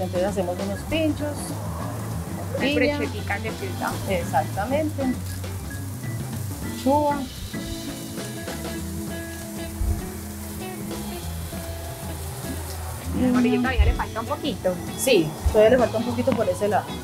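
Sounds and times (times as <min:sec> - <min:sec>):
food sizzling: 0:00.0 - 0:17.0
soft background music: 0:00.0 - 0:17.0.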